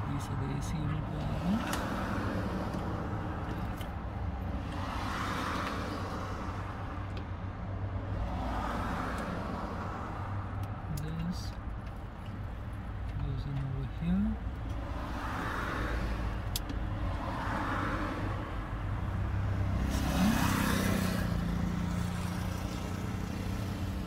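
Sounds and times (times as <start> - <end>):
vehicle noise: 0.0 - 24.0.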